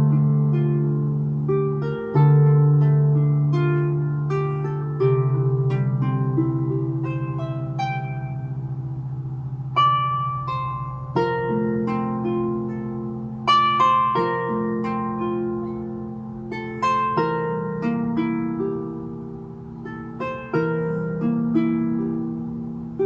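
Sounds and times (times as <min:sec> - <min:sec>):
solo harp playing: 0:00.0 - 0:23.0.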